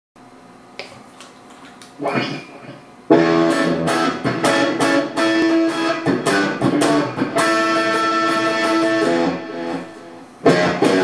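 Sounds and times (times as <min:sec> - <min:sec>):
guitar amplifier hiss and hum: 0:00.2 - 0:11.0.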